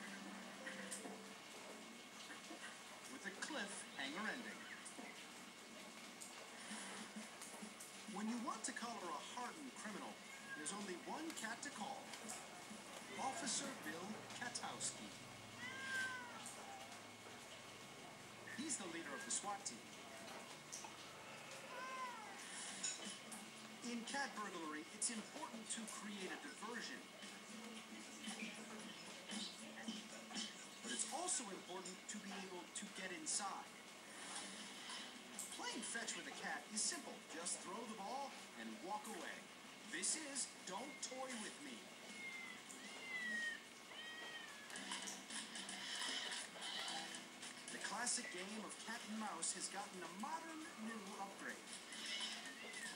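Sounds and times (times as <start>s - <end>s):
cat meowing on television: 10.0s - 11.4s, 12.2s - 17.4s, 18.1s - 23.2s, 40.8s - 47.4s, 50.4s - 52.9s.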